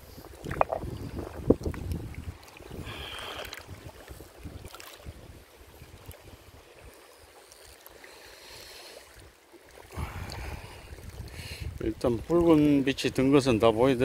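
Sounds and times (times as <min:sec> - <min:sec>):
wind rumbling on microphone: 0:00.0 - 0:07.0, 0:09.8 - 0:14.0.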